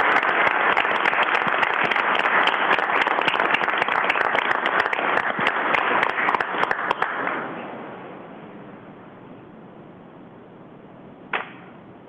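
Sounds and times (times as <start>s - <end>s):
room noise hiss: 0.0s - 12.0s
sharp knock: 11.3s - 11.8s.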